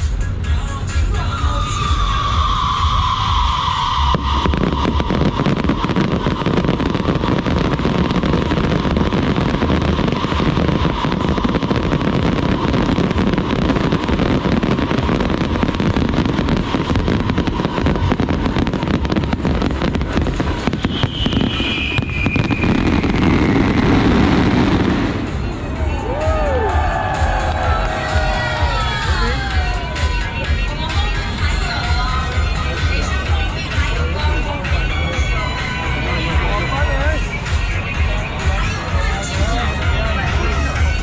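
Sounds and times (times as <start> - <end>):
fireworks bangs and crackling: 0.0 - 41.0.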